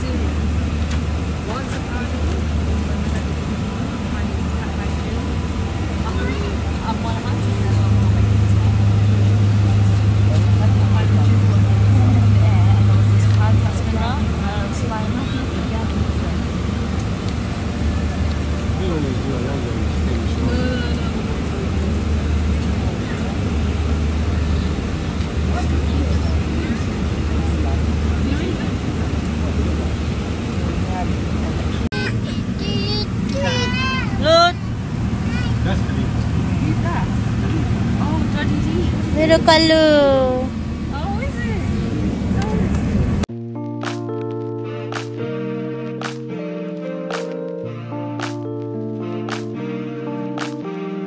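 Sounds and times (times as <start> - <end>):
airliner engine roar: 0.0 - 51.0
deep hum: 7.0 - 17.0.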